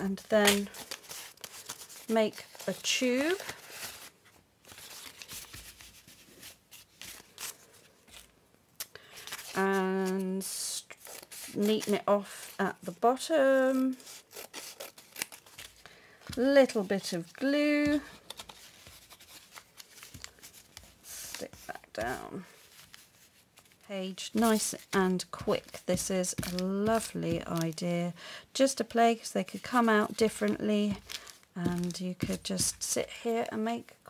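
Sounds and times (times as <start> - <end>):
packaging paper crinkling: 0.1 - 12.9, 13.5 - 27.8, 29.6 - 32.9.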